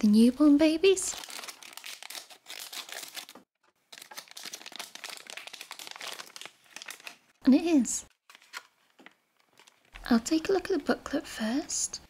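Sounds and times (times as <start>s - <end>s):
thick plastic bag crinkling: 0.8s - 7.4s.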